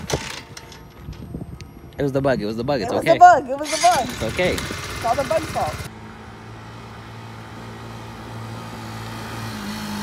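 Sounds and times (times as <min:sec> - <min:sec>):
motorcycle engine approaching: 0:03.6 - 0:10.0.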